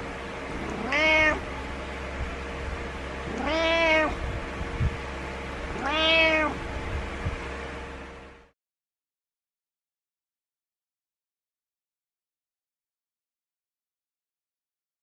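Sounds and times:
cat meowing: 0:00.6 - 0:01.6, 0:03.3 - 0:04.2, 0:05.7 - 0:06.6.

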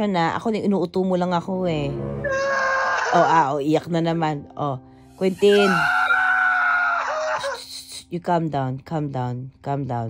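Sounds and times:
boy screaming and sobbing: 0:02.3 - 0:03.4, 0:05.5 - 0:07.6.

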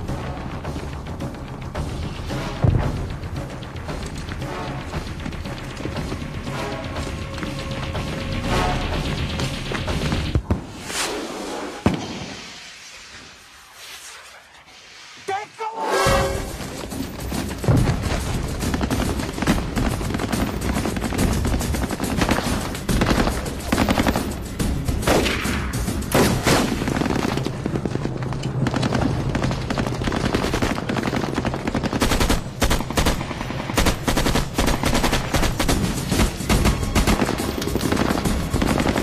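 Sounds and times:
background music: 0:00.0 - 0:12.0, 0:15.3 - 0:39.0
rapid machine-gun and rifle fire: 0:17.2 - 0:39.0.

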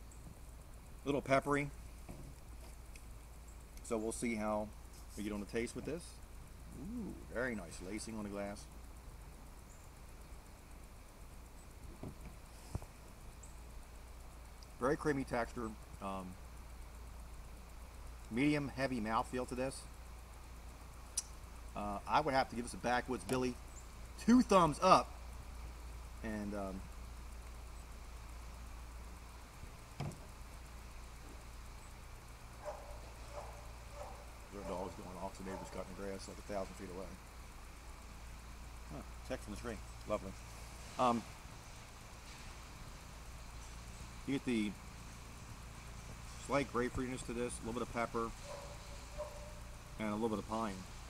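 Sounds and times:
distant lawn mower drone: 0:00.0 - 0:51.0
faint distant dog barks: 0:32.6 - 0:36.7, 0:48.3 - 0:49.8.

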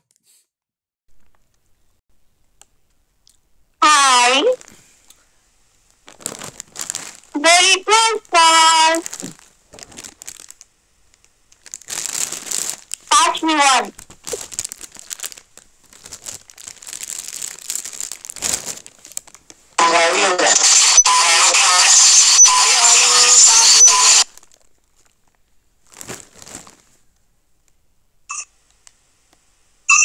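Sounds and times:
loud dense noise with voice: 0:03.8 - 0:04.6, 0:07.4 - 0:09.1, 0:13.1 - 0:14.0, 0:19.8 - 0:24.3
plastic packets crinkling: 0:05.9 - 0:07.3, 0:09.0 - 0:13.1, 0:13.9 - 0:19.6, 0:24.3 - 0:27.0.

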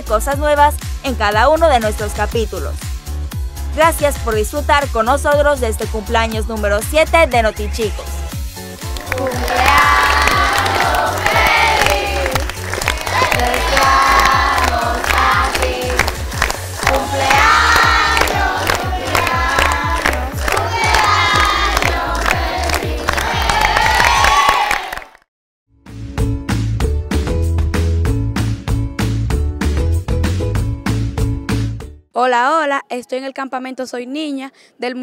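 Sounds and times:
background music with bass beat: 0:00.1 - 0:24.2, 0:25.8 - 0:32.0
children clapping: 0:08.8 - 0:25.2
children singing: 0:08.9 - 0:24.6.

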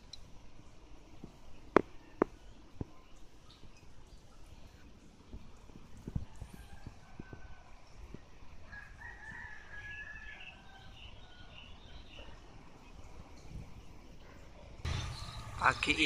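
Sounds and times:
faint outdoor ambience: 0:00.0 - 0:16.0.

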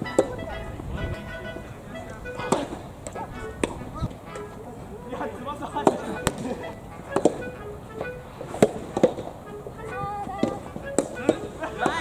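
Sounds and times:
ball popping off racket: 0:02.4 - 0:04.5, 0:07.1 - 0:07.5, 0:08.5 - 0:09.3, 0:10.4 - 0:12.0.

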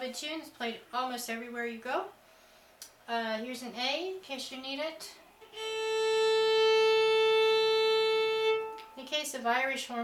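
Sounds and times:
violin long steady note: 0:05.4 - 0:09.5.

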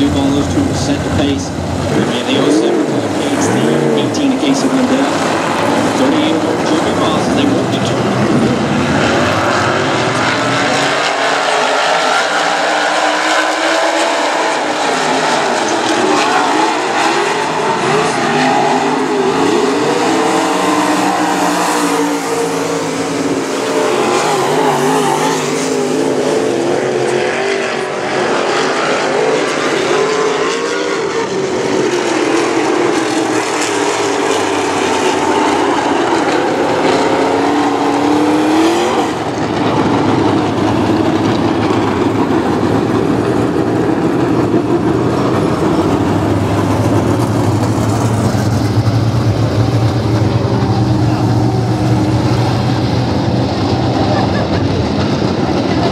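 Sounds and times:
race car engines: 0:00.0 - 0:55.9.

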